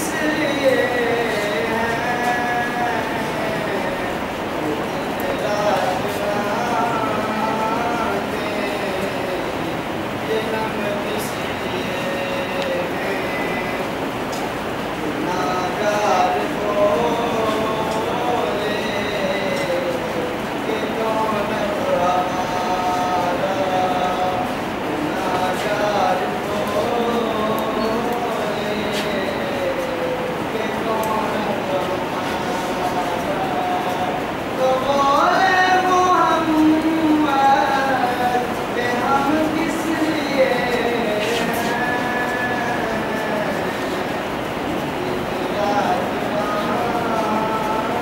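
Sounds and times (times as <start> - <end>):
boy chanting unaccompanied: 0.0 - 14.1, 15.0 - 48.0.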